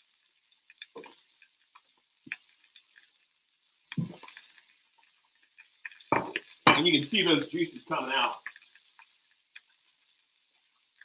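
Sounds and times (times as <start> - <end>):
faint crackles: 0.0 - 11.0
patty frying on a griddle: 0.0 - 11.0
plate knocking: 6.1 - 6.8.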